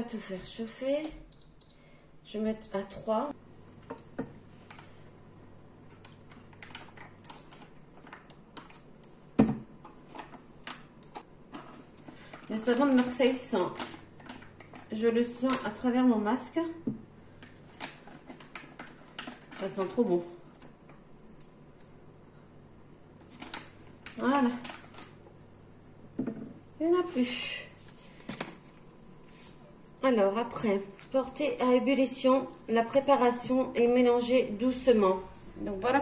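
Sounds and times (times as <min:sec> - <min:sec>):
steady low hum: 0:01.3 - 0:07.9, 0:33.6 - 0:36.0.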